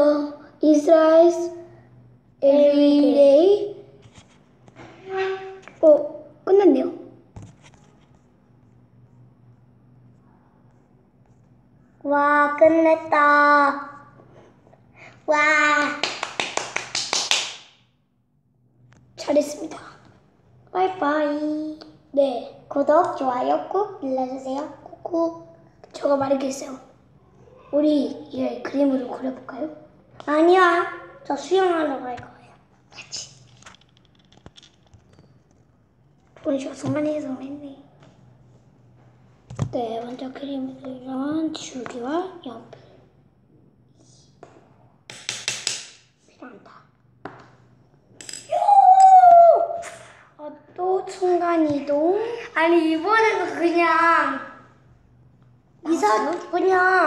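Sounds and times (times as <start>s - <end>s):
sharp hand claps: 15.8s - 17.8s, 45.1s - 46.0s
sharp taps on a hard surface: 44.4s - 46.1s.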